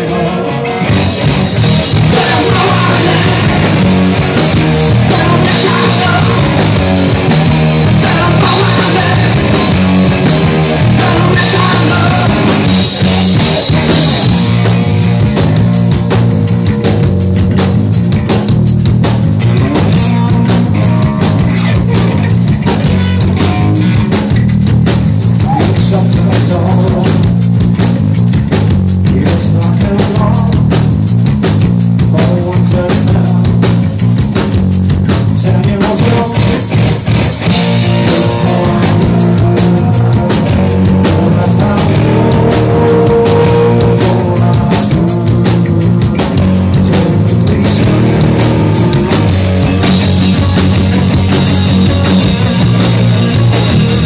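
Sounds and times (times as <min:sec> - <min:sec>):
distorted electric guitar: 0:00.0 - 0:54.0
heavy bass: 0:00.0 - 0:54.0
drum kit steady beat: 0:00.8 - 0:54.0.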